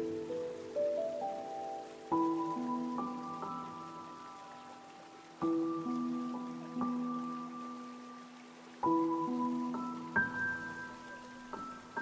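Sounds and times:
soft piano music: 0.0 - 12.0
stream running water: 0.0 - 12.0.

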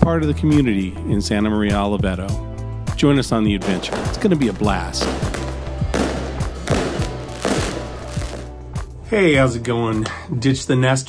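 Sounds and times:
background music: 0.0 - 11.0
fireworks banging: 3.6 - 8.6.

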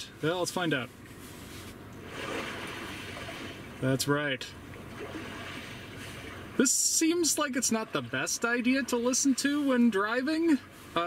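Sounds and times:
recorded sea waves: 0.2 - 11.0.

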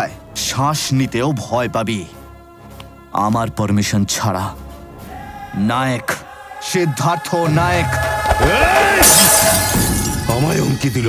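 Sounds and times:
dramatic film music: 0.0 - 11.0
drinking glass smashing: 9.0 - 10.4.

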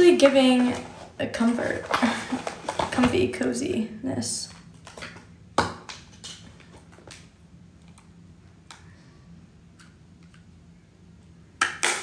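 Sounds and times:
rustling handling noise: 0.0 - 3.4
faint steady hum: 0.0 - 12.0.

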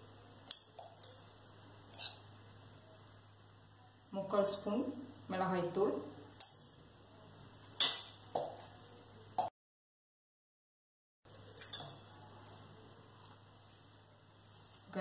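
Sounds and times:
kitchen utensils clinking: 11.5 - 12.1.

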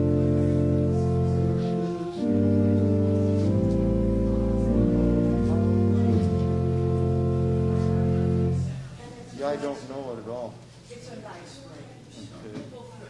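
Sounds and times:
sustained organ chords: 0.0 - 9.0.

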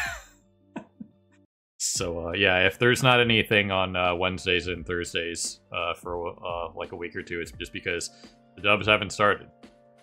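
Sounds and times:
man laughing: 0.0 - 1.2
man speaking: 1.8 - 9.5.

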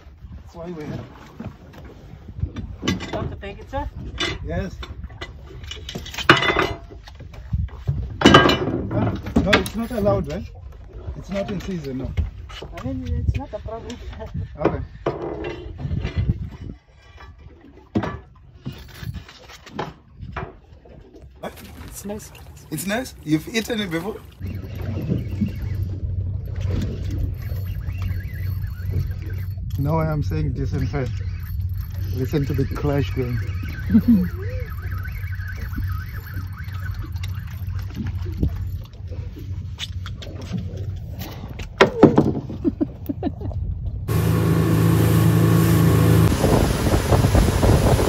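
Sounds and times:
outboard engines humming: 21.3 - 48.0.

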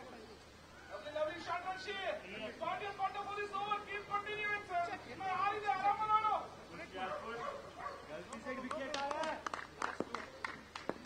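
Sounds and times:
people calling out: 0.7 - 9.4.

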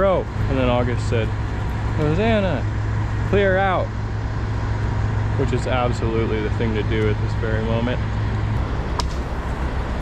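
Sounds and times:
diesel engine humming: 0.0 - 10.0.

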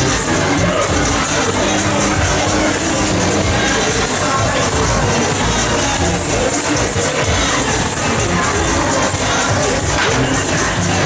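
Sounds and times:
crowd noise: 0.0 - 11.0
fairground ride music: 0.0 - 11.0
riders cheering: 0.0 - 11.0.

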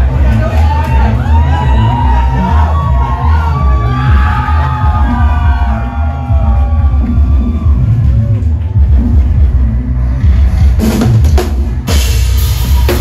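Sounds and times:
crowd yelling and whooping: 0.0 - 9.6, 12.0 - 13.0
heavy pulsing bass: 0.0 - 13.0
rock band playing live: 10.3 - 13.0.

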